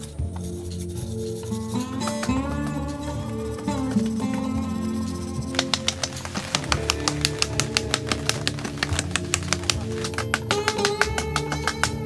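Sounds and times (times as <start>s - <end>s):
plucked guitar music: 1.6s - 12.0s
rapid sharp clicks: 5.2s - 12.0s.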